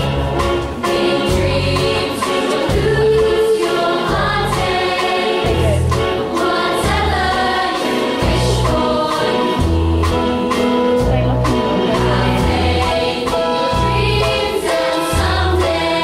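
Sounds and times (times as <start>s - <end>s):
choir singing slow song: 0.1s - 10.9s, 11.8s - 16.0s.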